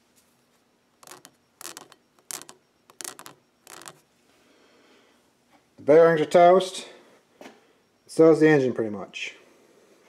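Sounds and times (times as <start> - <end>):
camshaft scraping on newspaper: 1.0 - 4.0.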